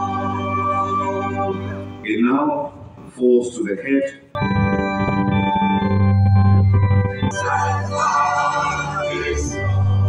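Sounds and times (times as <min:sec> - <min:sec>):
organ playing sustained chords: 0:00.0 - 0:03.1, 0:04.3 - 0:10.0.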